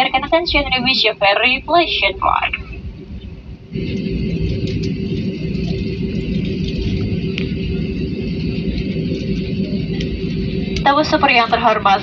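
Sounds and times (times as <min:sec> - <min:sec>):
airliner cabin rumble: 0:00.0 - 0:12.0
constant humming tone: 0:00.0 - 0:12.0.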